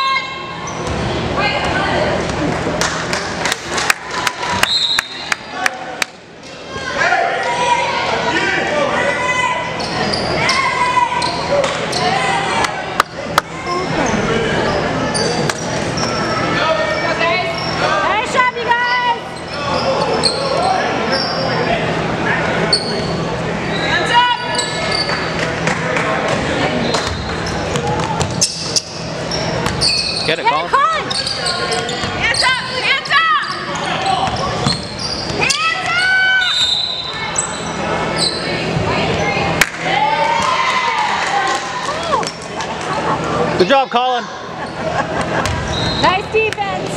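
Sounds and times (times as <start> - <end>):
shouts and chatter: 0.0 - 2.6, 3.3 - 46.9
sneakers squeaking: 0.4 - 2.3, 9.6 - 16.5, 17.1 - 18.1, 18.8 - 21.7, 22.6 - 25.6, 26.7 - 39.6, 42.1 - 42.5, 44.5 - 46.5.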